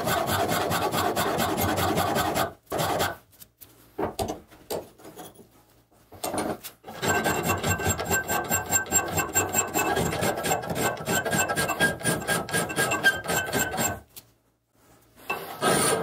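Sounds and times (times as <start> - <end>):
file rasping on steel: 0.0 - 3.2, 6.9 - 14.0.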